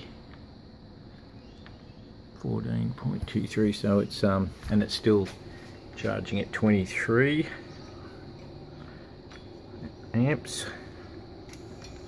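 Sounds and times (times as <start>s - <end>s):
faint low background hum: 0.0s - 12.0s.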